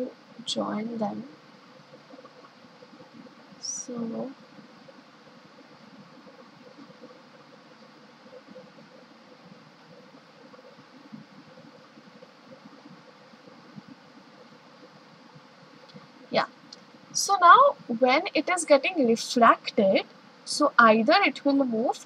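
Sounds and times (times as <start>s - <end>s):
background hiss: 0.0s - 22.0s
faint hum: 0.0s - 22.0s
soft ticks and rustles: 0.0s - 22.0s.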